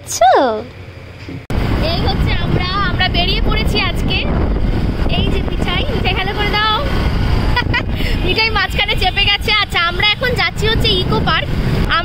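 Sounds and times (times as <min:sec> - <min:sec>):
high voice talking: 0:00.0 - 0:00.7, 0:01.8 - 0:04.3, 0:05.1 - 0:06.9, 0:08.2 - 0:12.0
motorcycle road noise: 0:00.0 - 0:12.0
wind on microphone: 0:01.5 - 0:09.6.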